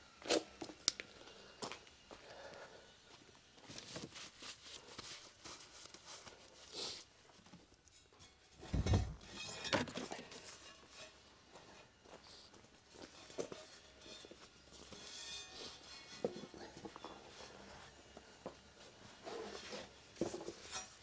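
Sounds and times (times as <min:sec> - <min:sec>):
light knocks and rustles: 0:07.4 - 0:11.8
heavy thump: 0:08.6 - 0:09.2.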